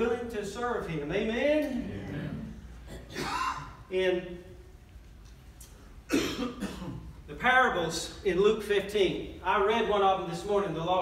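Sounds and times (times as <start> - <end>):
person coughing: 2.9 - 3.8, 6.1 - 7.1.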